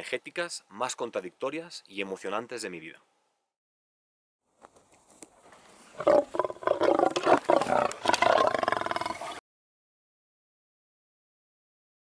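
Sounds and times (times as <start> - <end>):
large wild animal roaring: 6.0 - 9.4.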